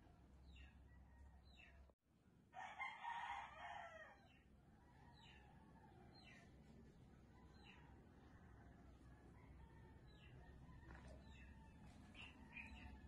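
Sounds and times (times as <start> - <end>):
rooster crowing: 2.6 - 4.2.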